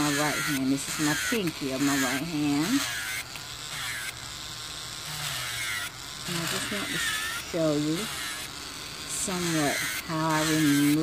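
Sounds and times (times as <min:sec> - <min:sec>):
electric nail drill buzzing: 0:00.0 - 0:11.0.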